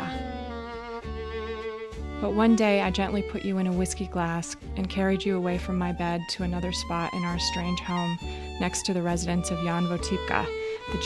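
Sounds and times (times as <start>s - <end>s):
slow bowed string chords: 0.0s - 11.0s.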